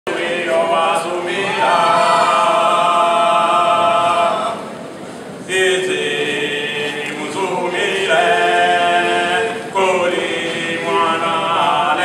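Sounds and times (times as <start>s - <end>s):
men singing a cappella in harmony: 0.1s - 4.8s, 5.4s - 12.0s.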